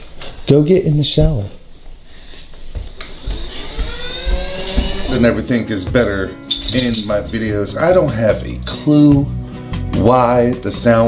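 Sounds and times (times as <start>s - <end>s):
rising whine: 2.8s - 5.6s
low thumps: 2.8s - 6.3s.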